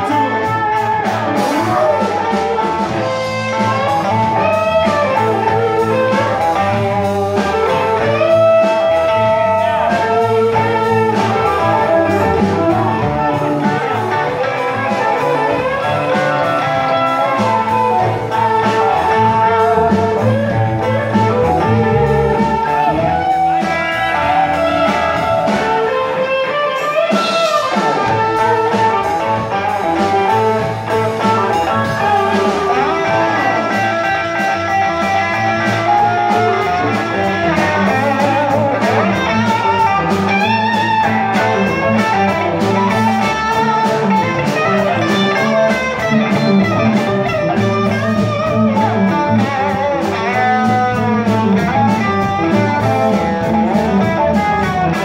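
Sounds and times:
blues band playing: 0.0 - 55.0
harmonica bending notes: 0.0 - 55.0.

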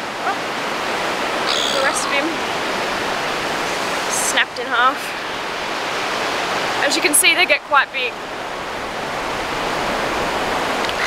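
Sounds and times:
surf breaking on beach: 0.4 - 7.1.

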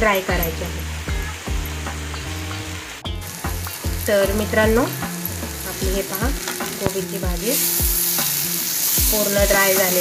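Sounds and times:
food sizzling in a metal pan: 0.0 - 10.0.

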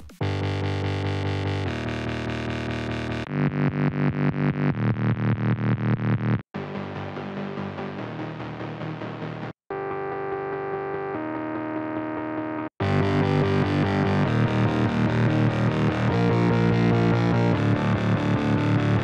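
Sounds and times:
steady drum beat: 0.0 - 0.2
distorted synth bassline: 0.0 - 9.9, 11.2 - 19.0
sustained synth chords: 1.6 - 19.0.

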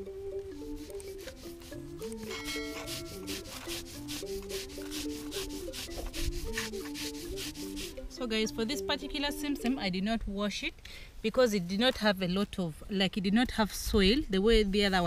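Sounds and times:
soft background music: 0.0 - 10.7
stone grating on stone: 0.6 - 8.0.

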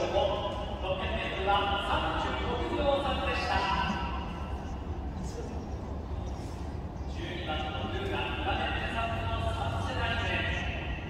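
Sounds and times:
voice over loudspeakers: 0.0 - 5.6, 7.1 - 11.0.

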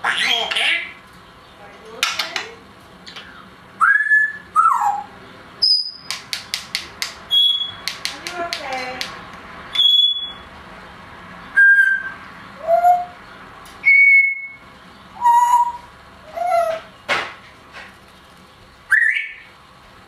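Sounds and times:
parrot whistles and calls: 3.2 - 6.1, 7.3 - 7.9, 9.7 - 10.5, 11.5 - 13.2, 13.8 - 16.9, 18.9 - 19.5.

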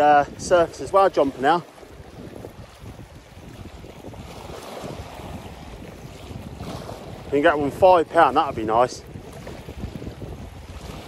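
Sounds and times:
waves washing over rocks: 0.0 - 11.0
wind on microphone: 0.0 - 11.0.

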